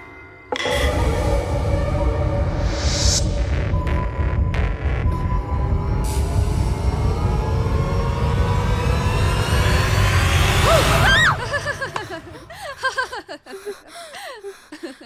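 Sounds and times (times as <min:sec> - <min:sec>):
deep low drone: 0:00.6 - 0:11.9.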